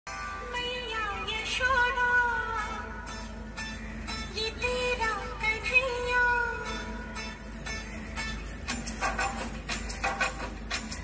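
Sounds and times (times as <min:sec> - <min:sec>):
light instrumental backing: 0:02.7 - 0:11.0.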